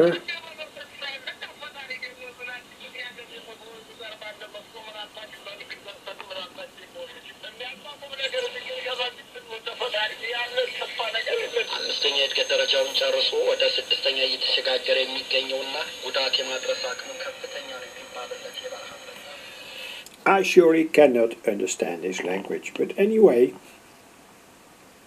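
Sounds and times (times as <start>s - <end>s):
radio speech through loudspeaker: 0.0s - 20.6s.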